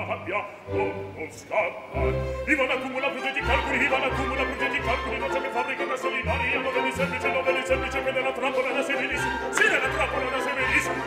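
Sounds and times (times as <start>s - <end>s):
orchestra playing: 0.0s - 11.0s
opera voice singing with vibrato: 2.0s - 11.0s.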